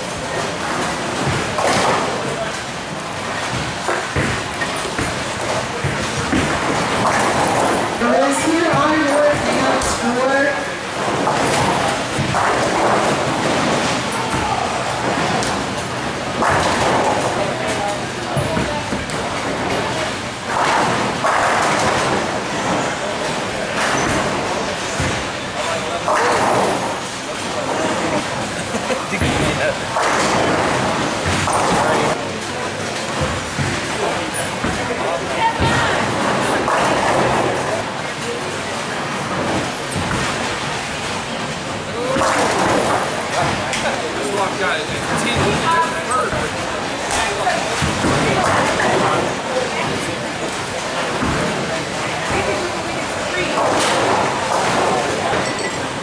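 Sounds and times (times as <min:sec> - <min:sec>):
background chatter: 0:00.0 - 0:56.0
bowling balls and pins crashing: 0:00.1 - 0:37.8, 0:38.7 - 0:56.0.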